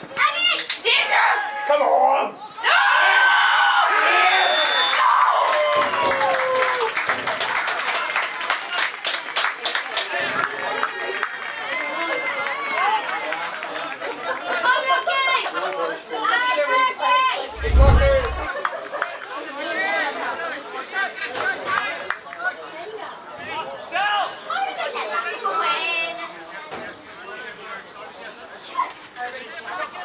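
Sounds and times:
short low boom: 17.5s - 18.5s.

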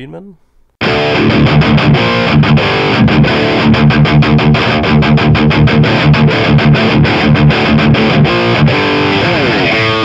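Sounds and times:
distorted electric guitar riff: 0.8s - 10.0s.

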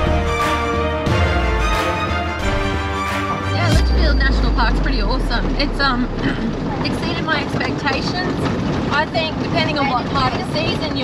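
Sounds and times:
engine and road rumble: 0.0s - 11.0s
indistinct voices talking: 3.4s - 8.4s.

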